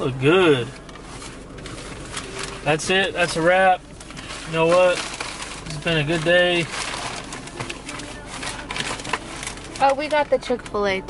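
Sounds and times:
paper bag rustling and crinkling: 0.1s - 10.8s.

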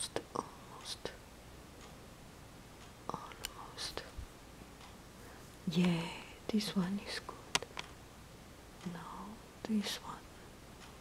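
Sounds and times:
person whispering: 0.0s - 1.2s, 3.1s - 4.2s, 5.6s - 7.6s, 8.8s - 10.3s.

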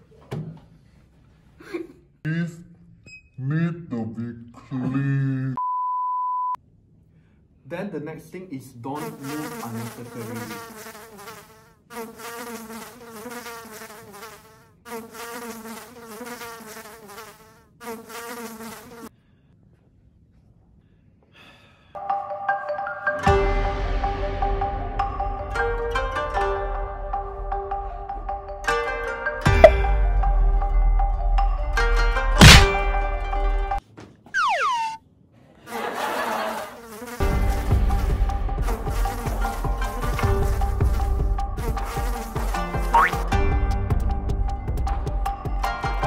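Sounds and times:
flying insect buzzing: 9.0s - 19.1s, 32.4s - 32.7s, 34.4s - 35.0s, 36.6s - 43.4s
fly swatter smacking: 32.4s - 32.8s, 42.0s - 43.3s
cartoon falling whistle: 34.4s - 35.0s.

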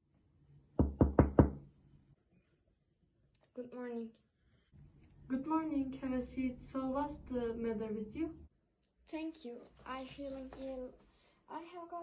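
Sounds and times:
knocks on a door: 0.8s - 1.7s.

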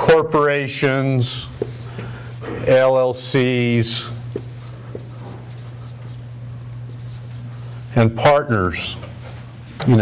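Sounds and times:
steady low hum: 0.0s - 10.0s
marker writing on whiteboard: 1.6s - 2.4s, 4.3s - 6.2s, 6.9s - 7.8s.

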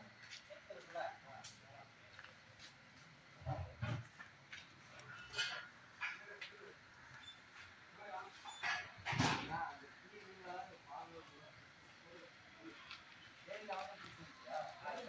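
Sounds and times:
voices in background: 0.0s - 15.0s.

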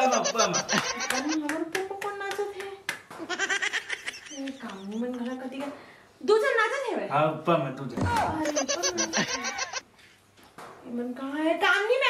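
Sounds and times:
person talking: 8.3s - 9.8s.

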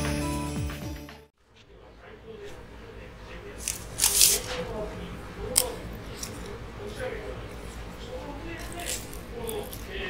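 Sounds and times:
wooden chopsticks snapping apart: 5.5s - 6.5s.

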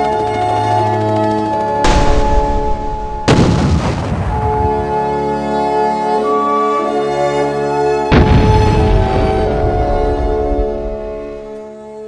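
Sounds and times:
background music with held notes: 0.0s - 12.0s
explosion blast with rumble: 1.8s - 5.1s, 8.1s - 11.5s.

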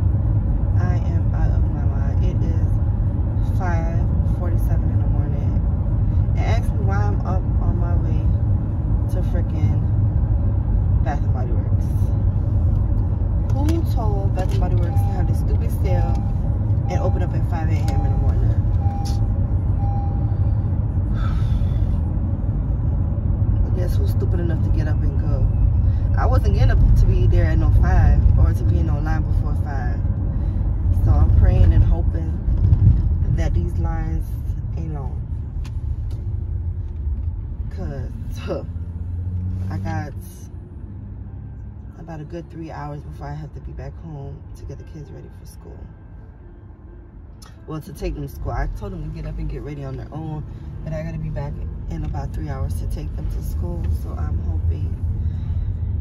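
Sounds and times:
road rumble in car cabin: 0.0s - 56.0s
people talking: 0.8s - 2.7s, 3.5s - 5.6s, 6.4s - 8.3s, 9.1s - 9.9s, 11.0s - 12.1s, 13.5s - 16.2s, 16.8s - 19.2s, 23.6s - 25.5s, 26.1s - 30.0s, 31.0s - 32.4s, 33.2s - 35.2s, 37.7s - 38.7s, 39.7s - 40.5s, 42.0s - 45.9s, 47.4s - 55.0s.

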